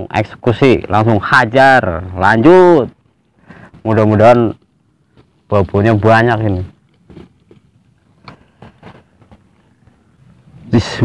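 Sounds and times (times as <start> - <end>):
fishing tackle rustling and tapping: 6.5 - 10.0.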